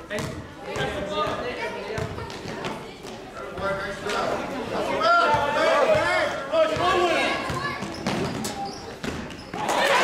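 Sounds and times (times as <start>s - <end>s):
basketball bouncing on hardwood floor: 2.0s - 2.6s, 6.8s - 9.5s.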